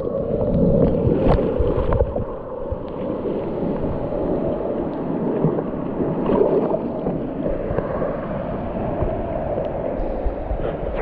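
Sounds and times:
sea surf sloshing and gurgling: 0.0s - 11.0s.

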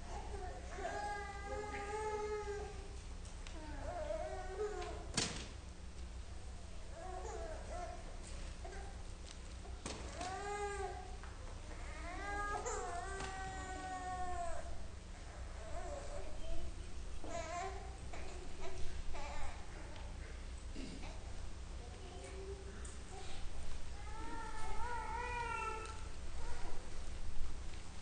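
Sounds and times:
low steady hum: 0.0s - 28.0s.

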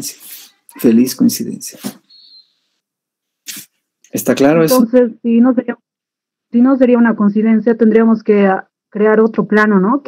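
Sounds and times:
faint hiss: 3.4s - 4.3s.

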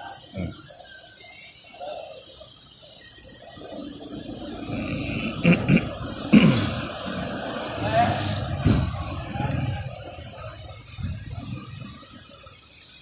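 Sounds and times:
low background noise: 0.0s - 13.0s
person laughing: 5.2s - 6.9s.

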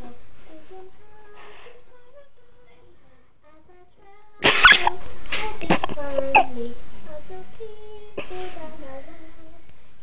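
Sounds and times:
person coughing: 4.4s - 4.9s.

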